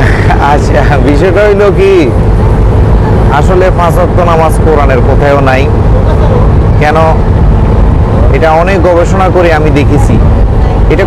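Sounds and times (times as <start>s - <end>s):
man talking: 0.0s - 2.2s, 3.3s - 7.2s, 8.2s - 10.3s
boat engine rumbling: 0.0s - 11.0s.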